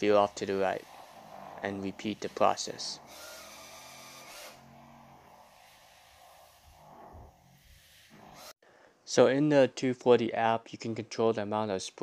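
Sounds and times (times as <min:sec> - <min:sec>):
mopping robot humming: 0:00.0 - 0:08.5.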